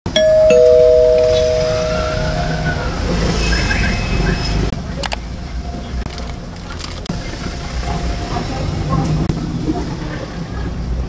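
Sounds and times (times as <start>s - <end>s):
two-note doorbell chime: 0.1s - 3.4s.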